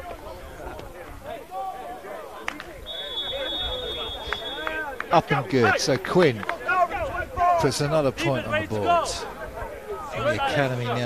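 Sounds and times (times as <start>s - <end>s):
players shouting: 0.0s - 11.0s
referee's whistle: 2.8s - 5.0s.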